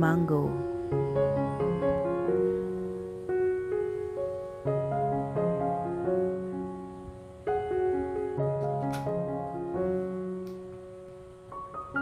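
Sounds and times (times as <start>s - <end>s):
soft piano chords: 0.0s - 12.0s.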